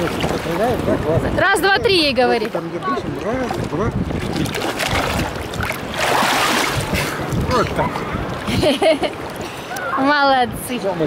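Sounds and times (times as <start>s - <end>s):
water splashing: 0.0s - 11.0s
waves lapping: 0.0s - 11.0s.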